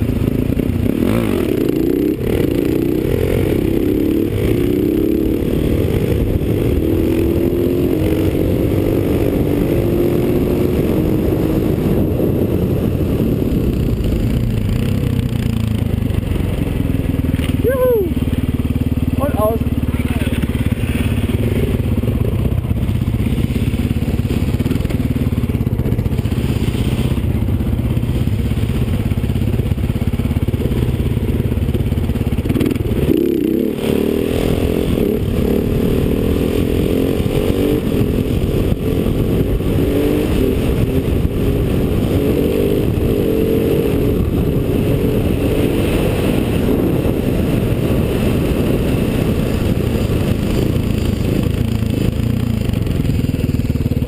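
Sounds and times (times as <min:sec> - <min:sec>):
motorcycle engine revving: 0:00.0 - 0:54.0.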